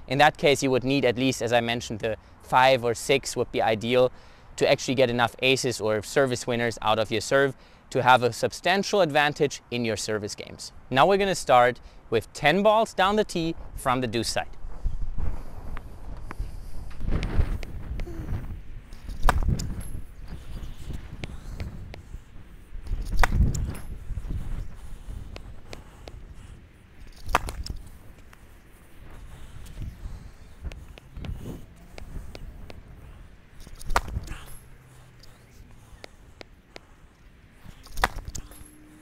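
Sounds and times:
wind rumbling on microphone: 0:13.5 - 0:39.0
racket striking tennis ball: 0:19.1 - 0:19.7, 0:23.0 - 0:23.6, 0:27.1 - 0:27.9, 0:33.6 - 0:34.7, 0:37.7 - 0:38.7.

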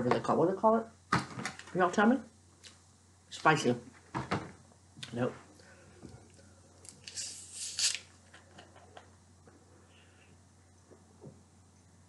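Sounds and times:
carbonation hissing: 0:05.6 - 0:08.4.

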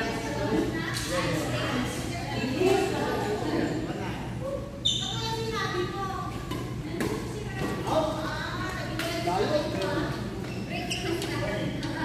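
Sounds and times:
voices in echoing hall: 0:00.0 - 0:12.0.

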